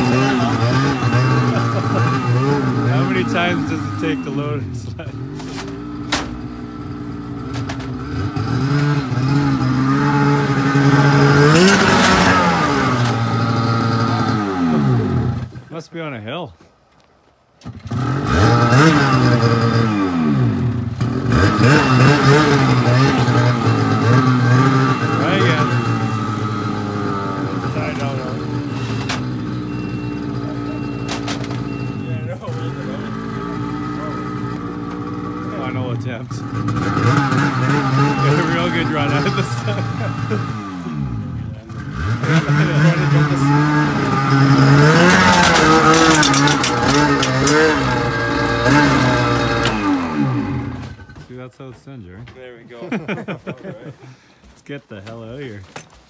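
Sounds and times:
snowmobile engine revving and idling: 0:00.0 - 0:16.2, 0:17.6 - 0:55.7.

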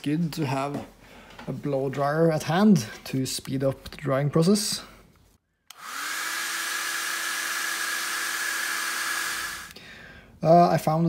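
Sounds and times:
blow dryer motor hum and whine: 0:05.7 - 0:09.8.

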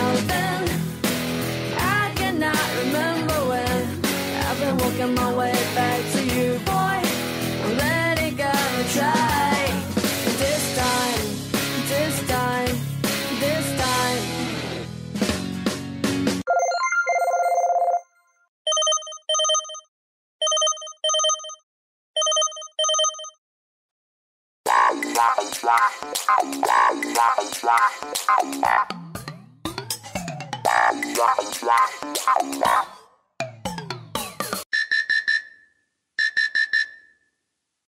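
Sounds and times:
telephone-style double rings: 0:16.5 - 0:18.1, 0:18.7 - 0:21.6, 0:22.2 - 0:23.4
rock music ringtone: 0:16.5 - 0:21.6
quick high electronic beeps: 0:34.7 - 0:35.6, 0:36.2 - 0:37.2.

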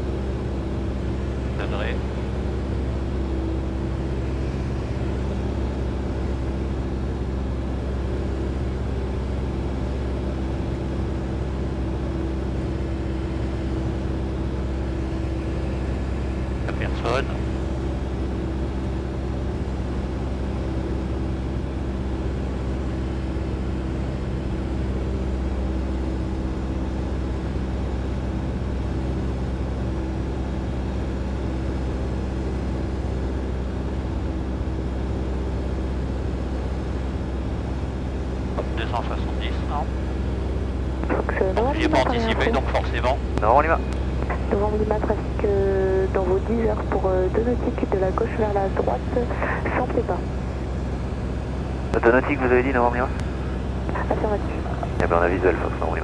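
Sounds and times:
light aircraft engine droning: 0:00.0 - 0:56.0.

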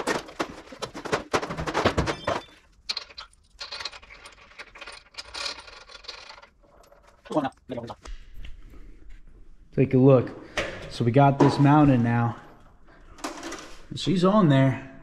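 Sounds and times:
rattle of small metal knocks: 0:00.0 - 0:07.5.

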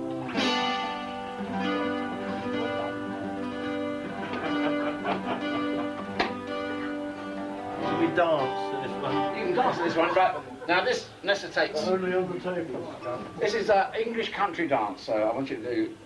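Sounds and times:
acoustic guitar strummed: 0:00.0 - 0:10.4.

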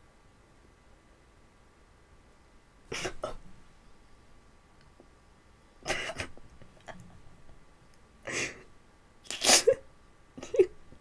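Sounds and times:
woman laughing breathily: 0:08.2 - 0:08.7, 0:10.4 - 0:10.8.

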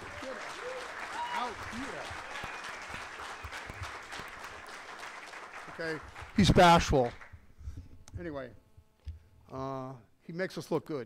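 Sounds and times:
audience applauding: 0:00.0 - 0:07.4.

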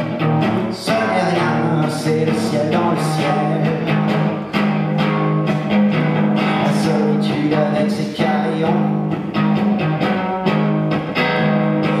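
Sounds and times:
strummed guitar: 0:00.0 - 0:12.0.

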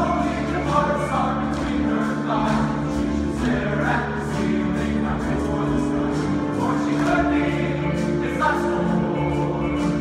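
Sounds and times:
group of voices singing: 0:00.0 - 0:10.0
musical accompaniment: 0:00.0 - 0:10.0.

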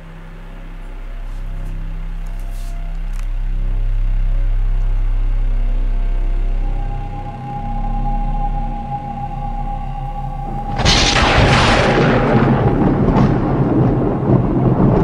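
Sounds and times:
low sustained drone: 0:00.0 - 0:15.0
higher held note: 0:06.5 - 0:12.8.

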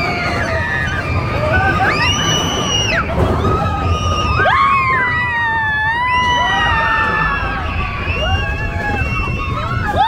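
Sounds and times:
roller coaster riders screaming: 0:00.0 - 0:10.0
roller coaster train rumble: 0:00.0 - 0:10.0.

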